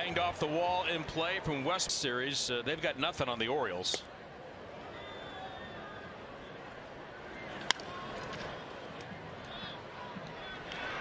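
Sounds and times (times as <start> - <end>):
murmur of ballpark crowd: 0.0 - 11.0
wooden bat hitting baseball: 7.6 - 8.4.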